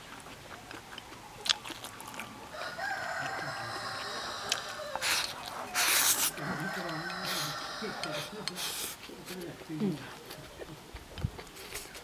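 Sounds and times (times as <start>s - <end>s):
eating with chopsticks: 0.0s - 9.4s.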